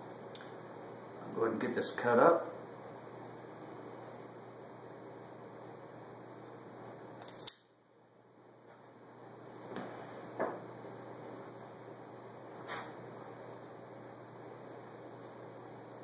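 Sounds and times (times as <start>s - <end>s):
faint room hum: 0.0s - 16.0s.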